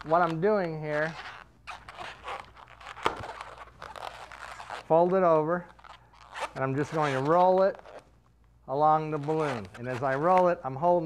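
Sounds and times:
balloon rubbing and squeaking: 0.0s - 8.2s, 8.8s - 11.0s.

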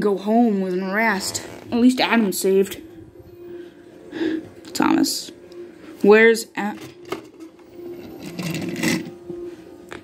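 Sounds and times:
plastic toy rattling scrape: 8.2s - 9.1s.

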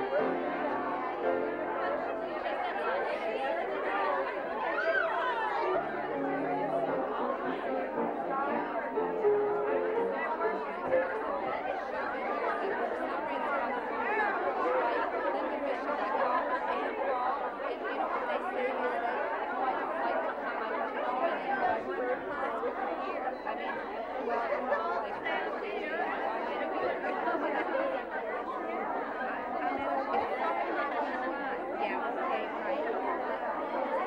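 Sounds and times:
women chattering: 0.0s - 34.0s.

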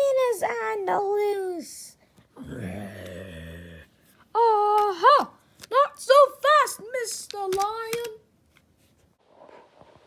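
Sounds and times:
person's voice: 0.0s - 3.2s, 4.3s - 8.2s.

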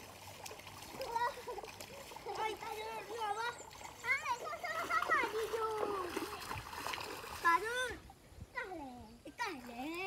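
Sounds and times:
hands slapping water: 0.0s - 7.7s.

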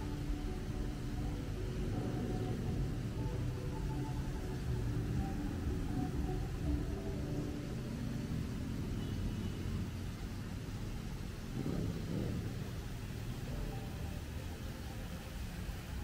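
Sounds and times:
low rumble of traffic: 0.0s - 16.0s.

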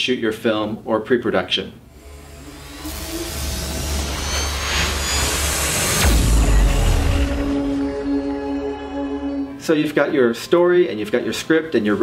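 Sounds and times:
low rumble: 1.9s - 9.5s.

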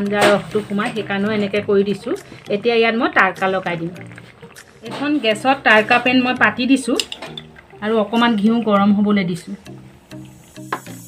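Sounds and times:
woman talking: 0.0s - 4.0s, 4.8s - 7.1s, 7.8s - 9.6s.

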